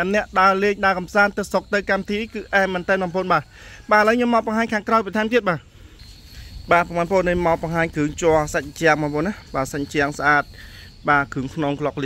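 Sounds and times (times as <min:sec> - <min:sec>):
man talking: 0:00.0 - 0:05.7, 0:06.6 - 0:12.0.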